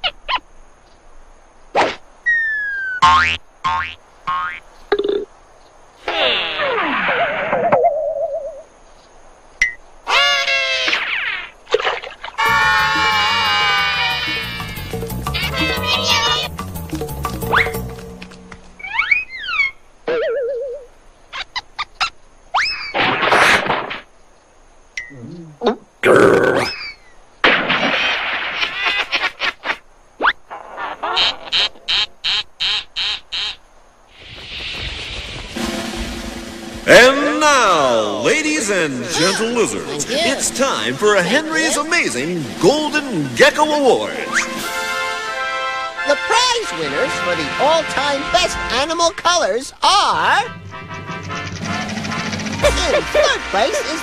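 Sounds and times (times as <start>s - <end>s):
rising cartoon whistle: 2.2s - 3.0s, 18.8s - 20.8s
short pitched blasts: 32.3s - 46.0s.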